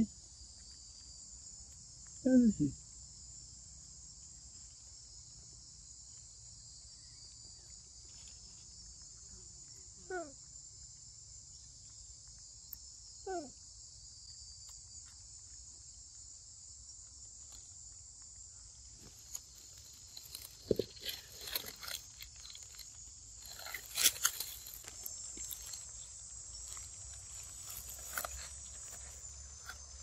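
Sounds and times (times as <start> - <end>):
insect chorus buzzing: 0.0 - 30.0.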